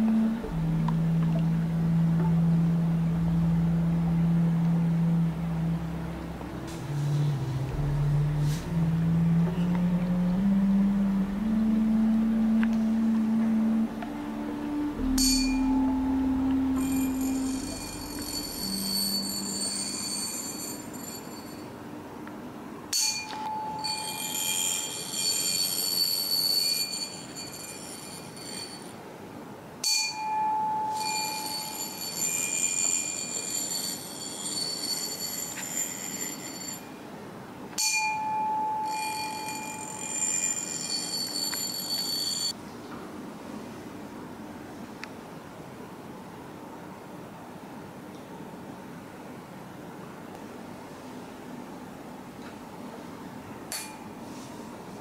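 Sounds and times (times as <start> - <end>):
tuning fork ringing: 0.0 - 21.8, 22.9 - 29.0, 29.8 - 37.0, 37.8 - 42.6.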